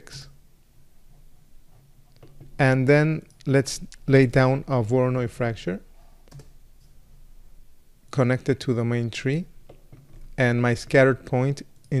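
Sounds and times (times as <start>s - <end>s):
keyboard and mouse clicks: 6.2s - 6.6s.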